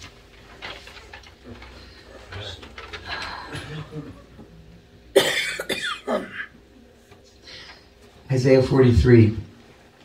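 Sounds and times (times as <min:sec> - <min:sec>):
man coughing and clearing throat: 0:05.1 - 0:06.6.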